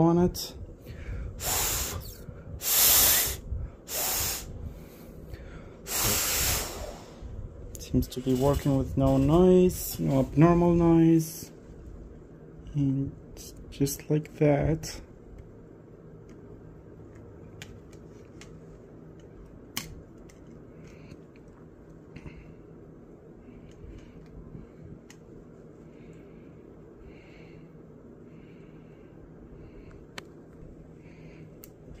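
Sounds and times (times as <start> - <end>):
faint low hum: 0.0 - 32.0.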